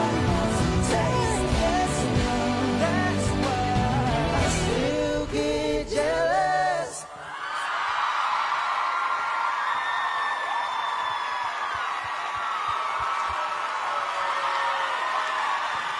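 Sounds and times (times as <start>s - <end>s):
song: 0.0s - 7.2s
audience cheering and clapping: 7.2s - 15.9s.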